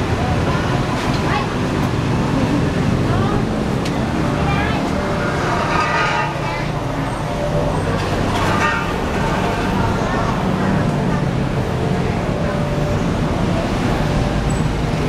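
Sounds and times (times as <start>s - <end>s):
indistinct voices: 0.0s - 15.0s
traffic rumble: 0.0s - 15.0s.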